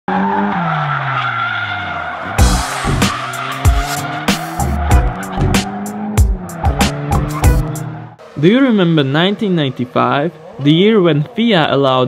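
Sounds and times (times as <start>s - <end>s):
car engine revving: 0.1s - 11.7s
falling tone: 2.2s - 8.1s
music with heavy beat: 2.4s - 8.0s.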